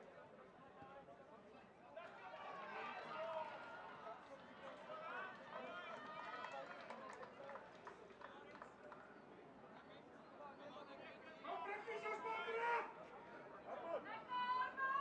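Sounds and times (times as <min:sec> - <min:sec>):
faint shouting of players and crowd: 0:00.0 - 0:15.0.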